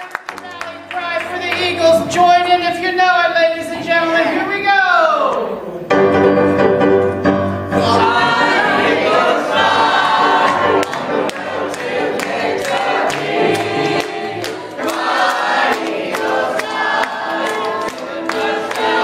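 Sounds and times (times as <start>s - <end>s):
group singing: 7.7s - 19.0s.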